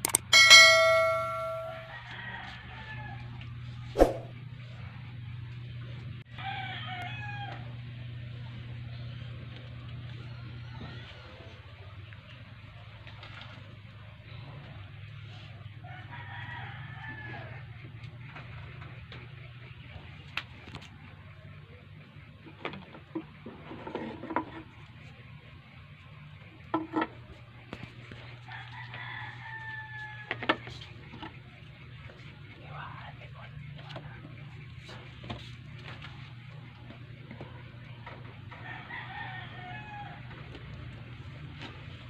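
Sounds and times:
sharp knocks and handling clicks: 0.0 - 0.3
rooster crowing: 0.6 - 3.4, 6.3 - 7.8, 15.8 - 17.7, 28.5 - 30.6, 38.5 - 40.6
steady low hum: 3.2 - 6.3.

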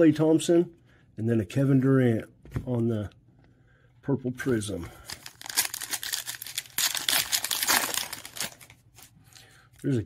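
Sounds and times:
wrapper crinkling: 5.0 - 9.4.

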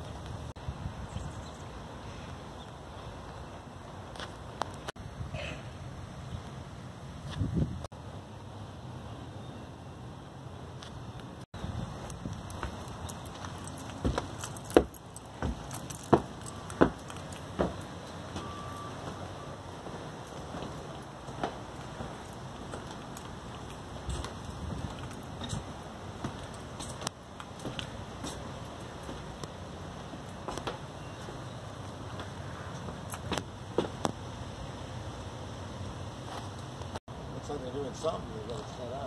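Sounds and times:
outdoor background noise: 0.0 - 39.0
footsteps on wooden steps: 11.8 - 34.2.

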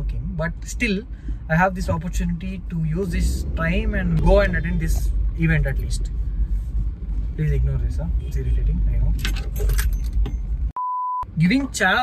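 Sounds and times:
metallic jangling: 9.2 - 10.6
steady test tone beep: 10.8 - 11.3.

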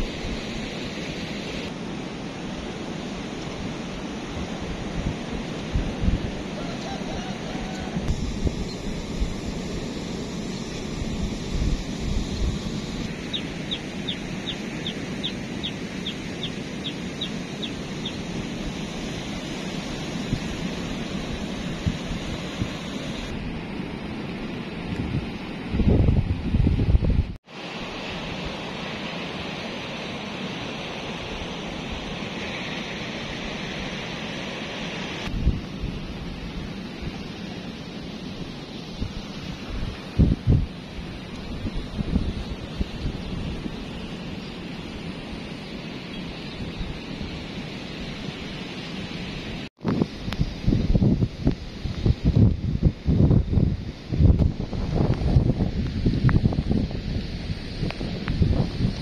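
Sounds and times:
distant sea surf: 0.0 - 59.0
wind: 0.0 - 59.0
wind buffeting microphone: 3.5 - 23.8, 24.7 - 27.4, 35.3 - 37.2, 38.4 - 45.3, 49.8 - 59.0.

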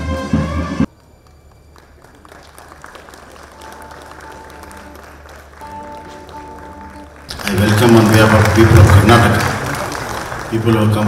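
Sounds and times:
music: 0.0 - 11.0
faint crowd applause: 0.9 - 11.0.

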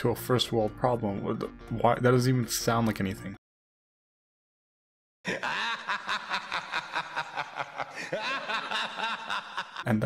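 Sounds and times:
snickering laughter: 5.3 - 9.9.

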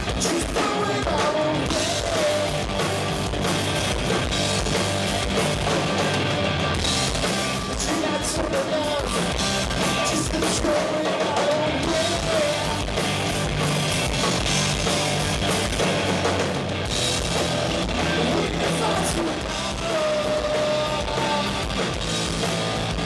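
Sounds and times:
rock band playing live: 0.0 - 23.0.

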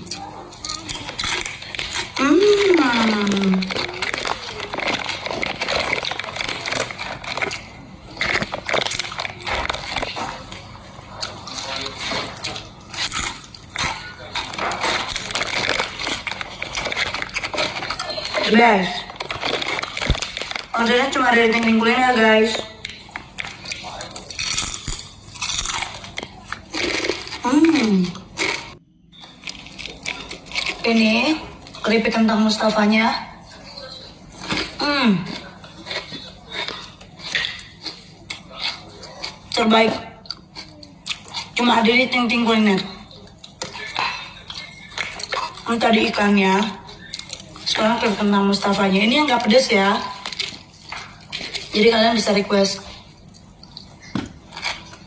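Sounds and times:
crunching crispy snacks: 0.0 - 31.8, 33.5 - 39.7, 43.0 - 55.0
plastic snack bag rustling: 0.6 - 32.1.

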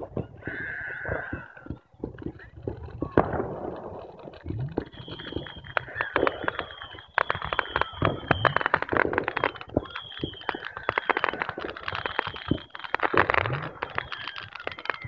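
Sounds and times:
fireworks popping and banging: 0.0 - 15.0
high firework whistle: 4.7 - 15.0.

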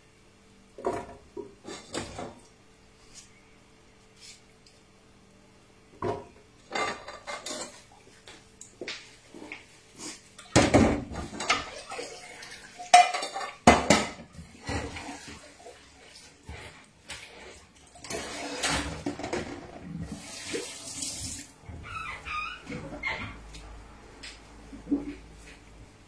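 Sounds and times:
dishes and pots clattering: 0.8 - 2.4, 6.0 - 8.0, 10.4 - 15.7, 18.0 - 19.9.

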